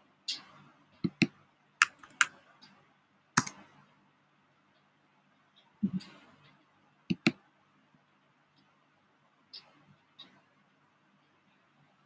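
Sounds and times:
computer keyboard typing: 0:01.1 - 0:02.4.

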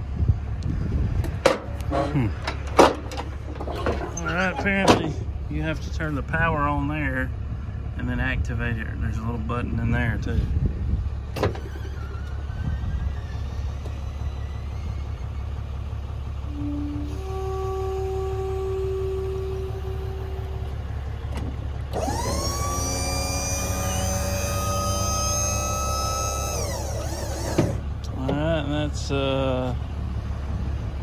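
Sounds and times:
low steady rumble: 0:00.0 - 0:31.0
hydraulic pump motor whine: 0:11.3 - 0:28.1.

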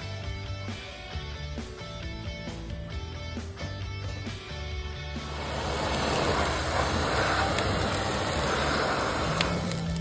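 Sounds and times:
charcoal fire rushing: 0:05.1 - 0:10.0
fire crackles: 0:05.1 - 0:10.0.

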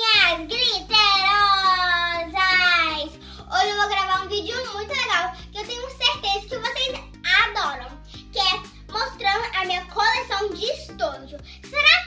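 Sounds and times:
girl singing high notes: 0:00.0 - 0:10.8
background music with bass: 0:00.0 - 0:12.0.

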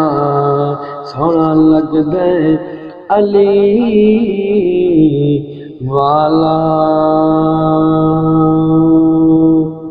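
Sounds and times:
man singing a long note: 0:00.0 - 0:09.9.

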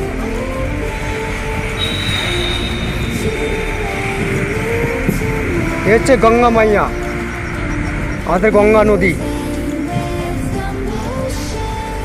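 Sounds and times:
train crossing a steel bridge: 0:00.0 - 0:12.0
high-pitched wheel squeal: 0:01.7 - 0:05.4.

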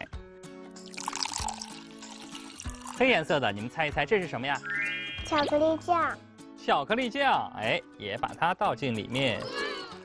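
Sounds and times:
background music with held notes: 0:00.0 - 0:10.0
milk pouring into a glass bowl: 0:00.8 - 0:03.4.

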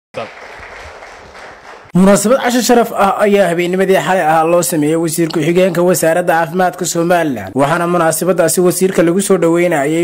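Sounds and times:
audience applause: 0:00.2 - 0:01.9
person speaking: 0:01.9 - 0:10.0.

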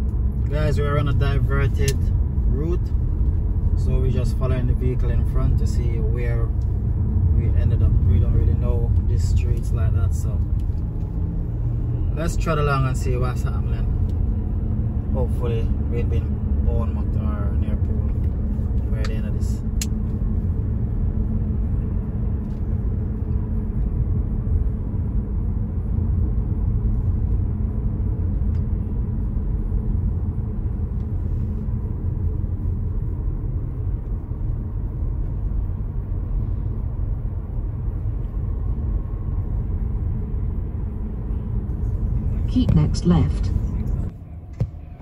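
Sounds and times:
car driving heard from inside: 0:00.0 - 0:45.0.

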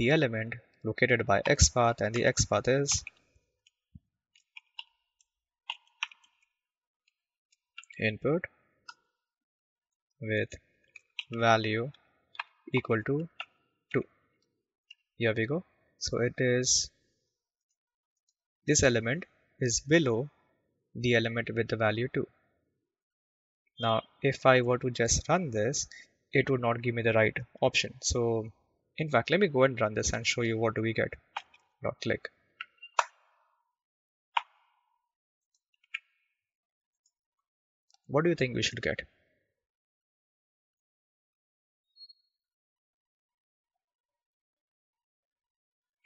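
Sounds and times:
person speaking: 0:00.0 - 0:03.1, 0:07.8 - 0:08.5, 0:11.2 - 0:12.0, 0:12.7 - 0:13.3, 0:15.2 - 0:16.9, 0:18.7 - 0:20.3, 0:21.0 - 0:22.2, 0:23.8 - 0:31.2, 0:31.8 - 0:32.3, 0:38.1 - 0:39.0.

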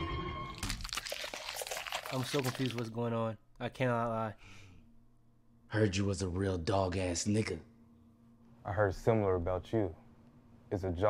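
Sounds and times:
sharp cracks and crunches: 0:00.6 - 0:03.0.

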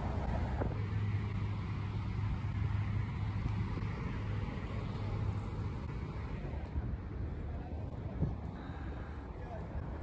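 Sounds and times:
skate wheels rolling on asphalt: 0:00.0 - 0:10.0.

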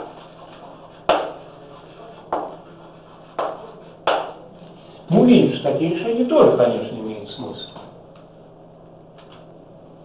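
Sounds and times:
chalk tapping on blackboard: 0:00.0 - 0:04.4.

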